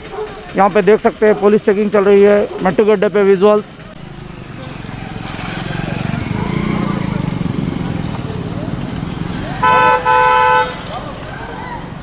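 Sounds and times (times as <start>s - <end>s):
motorcycle engine running: 3.8s - 11.4s.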